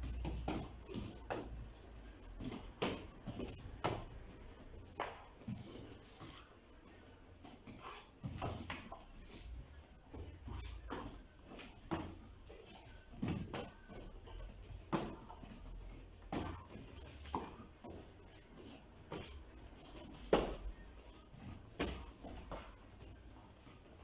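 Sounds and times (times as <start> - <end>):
kicks thudding on thigh: 14.8 - 15.6, 20.0 - 20.7.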